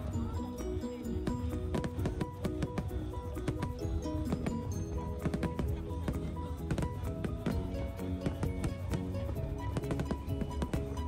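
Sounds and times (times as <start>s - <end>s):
melodic music with beat: 0.0s - 11.0s.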